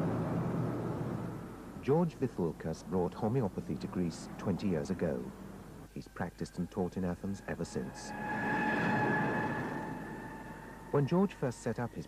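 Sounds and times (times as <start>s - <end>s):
vehicle passing with whine: 2.8s - 5.8s, 7.3s - 11.7s.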